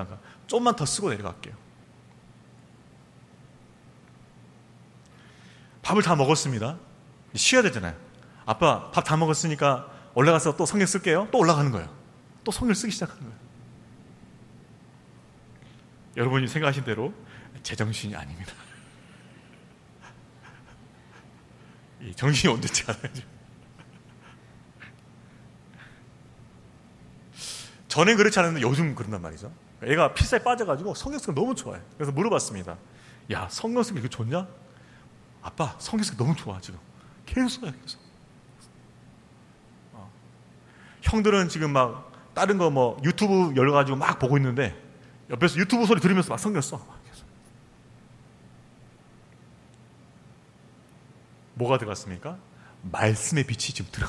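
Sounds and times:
low room hiss: 0.0 - 54.0
soft breathy chuckles: 20.0 - 21.5, 23.5 - 25.0.

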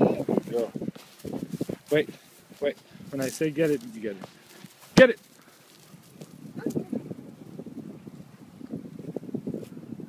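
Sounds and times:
dog paws galloping on dry grass: 0.0 - 7.2.

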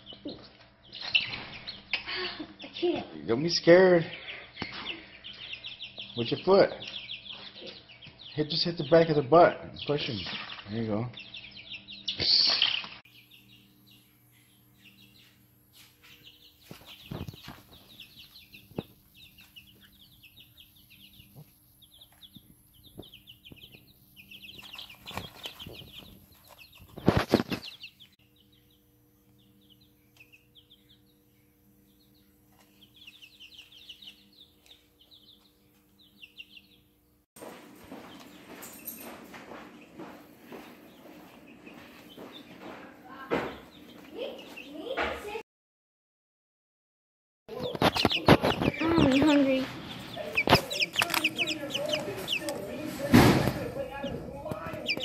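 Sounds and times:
baby chicks peeping: 0.0 - 45.4, 47.5 - 55.0
wings flapping: 24.5 - 27.9, 47.5 - 55.0.

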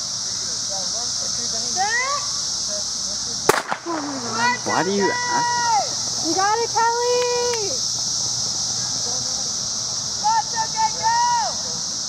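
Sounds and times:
voices calling: 0.0 - 12.0
starter's pistol crack: 3.5 - 4.3.

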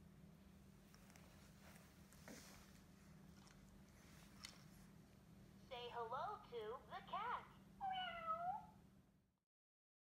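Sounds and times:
room hum: 0.0 - 9.4
faint soft rustles: 0.6 - 5.7.

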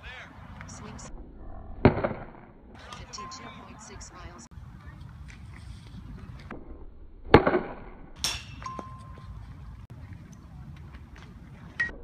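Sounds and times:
bat cracking a ball: 7.3 - 9.0.

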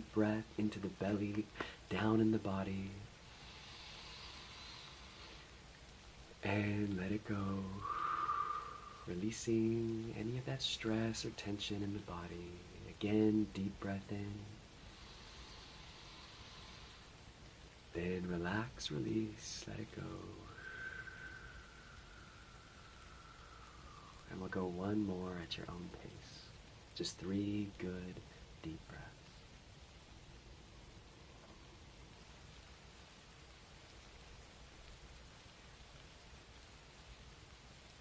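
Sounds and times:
low room hum: 0.0 - 38.0
deep breath through the nose: 3.3 - 5.5, 7.8 - 9.1, 14.8 - 17.1, 20.5 - 24.2.

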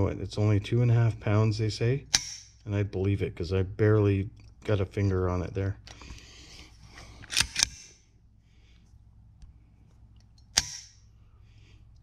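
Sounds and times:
sharp metallic trigger snap: 2.1 - 2.6, 7.3 - 8.0, 10.4 - 11.0.

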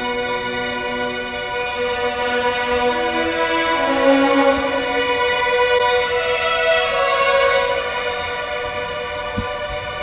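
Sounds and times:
string orchestra sustained chord: 0.0 - 10.0.

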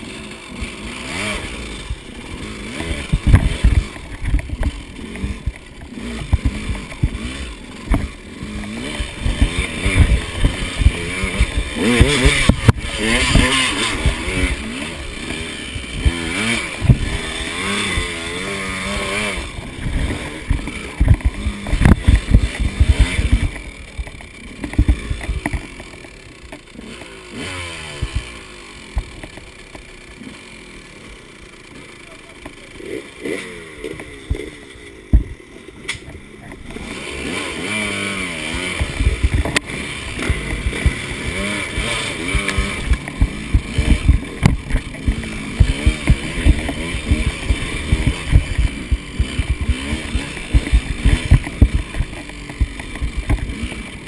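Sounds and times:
dirt bike engine revving: 0.0 - 54.0
bike knocking on rocks: 19.7 - 26.7, 35.1 - 35.4, 38.8 - 53.6.

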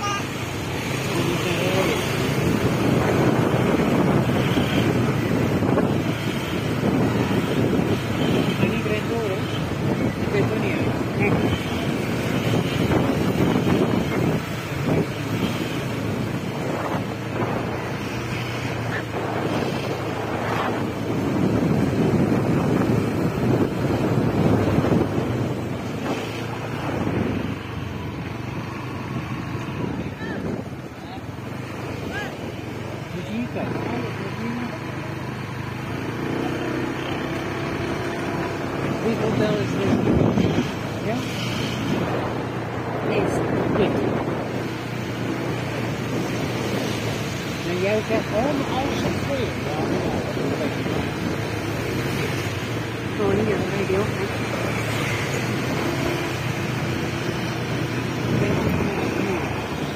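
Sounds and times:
scooter engine: 0.0 - 59.9
street traffic: 0.0 - 59.9
wind buffeting microphone: 0.0 - 59.9.

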